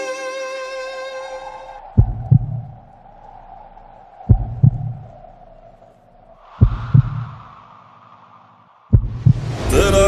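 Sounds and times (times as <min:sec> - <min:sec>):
heartbeat thumps: 0:02.0 - 0:02.8, 0:04.3 - 0:05.1, 0:06.6 - 0:07.4, 0:08.9 - 0:09.6.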